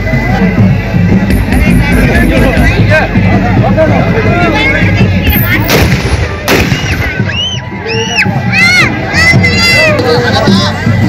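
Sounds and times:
crowd noise: 0:00.0 - 0:11.0
wedding music: 0:00.0 - 0:11.0
gunshots: 0:05.3 - 0:07.3
high rising and falling whistles: 0:06.8 - 0:08.3.

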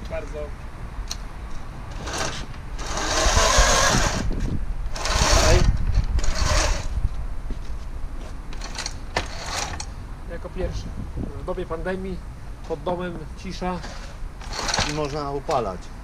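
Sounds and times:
electric motor whirring: 0:01.9 - 0:07.0.

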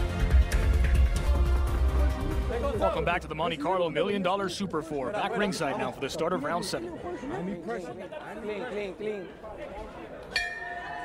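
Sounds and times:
crowd chatter: 0:00.3 - 0:11.0
boxing ring bell ringing: 0:10.4 - 0:11.0.

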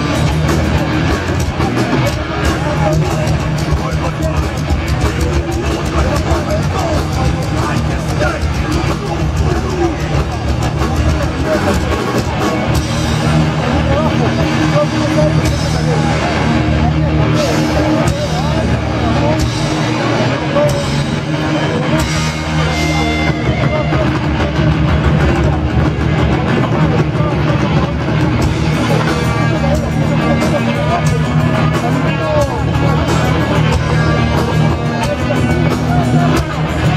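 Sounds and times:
metal band playing live: 0:00.0 - 0:36.9
voices over music: 0:00.0 - 0:36.9.

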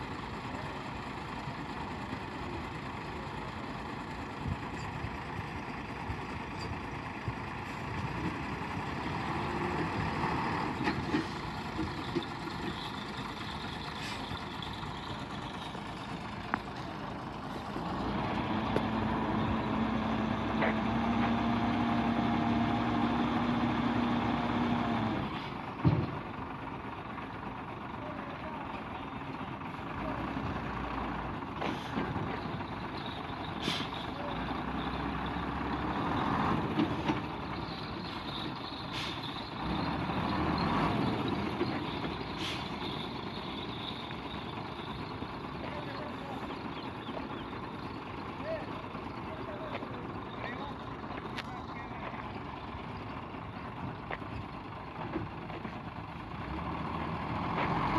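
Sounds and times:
truck diesel engine running: 0:00.0 - 0:57.9
sand unloading from dump bed: 0:36.5 - 0:43.6.

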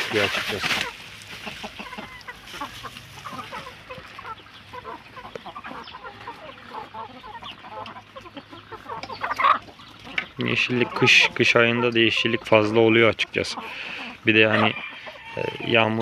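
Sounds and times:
chickens clucking: 0:00.0 - 0:16.0.

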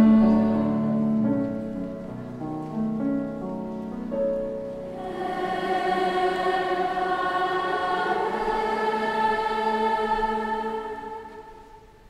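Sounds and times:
children's choir singing: 0:00.0 - 0:01.0, 0:04.9 - 0:12.0
piano: 0:00.0 - 0:12.0.

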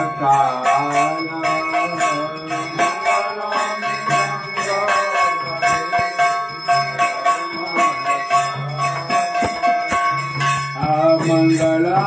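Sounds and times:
low bell tone: 0:00.0 - 0:12.0
temple bells ringing: 0:00.0 - 0:12.0.

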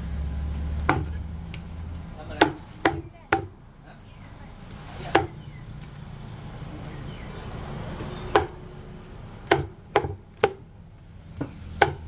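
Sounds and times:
cleaver chopping on wooden block: 0:00.8 - 0:01.2, 0:02.4 - 0:03.6, 0:05.1 - 0:05.4, 0:08.3 - 0:08.6, 0:09.4 - 0:10.6, 0:11.4 - 0:12.0.

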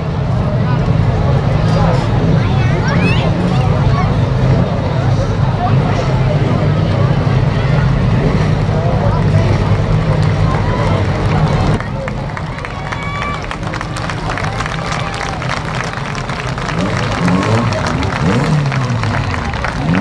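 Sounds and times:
race car engine running: 0:00.0 - 0:20.0
voices: 0:00.0 - 0:20.0.

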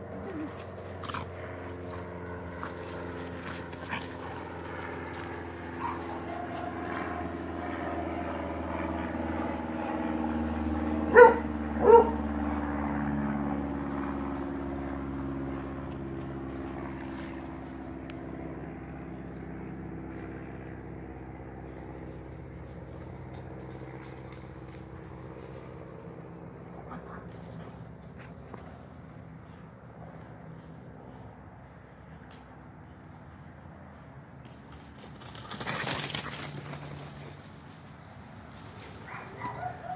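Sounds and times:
steady motor hum: 0:00.0 - 0:35.6
dog barking: 0:05.8 - 0:06.4, 0:11.1 - 0:12.2, 0:39.0 - 0:39.9.

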